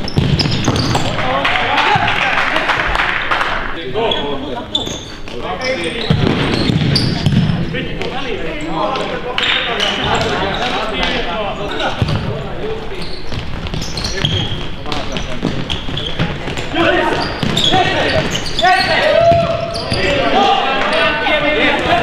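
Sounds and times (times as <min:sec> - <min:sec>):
ball kicked and thudding on floor: 0:00.1 - 0:01.0.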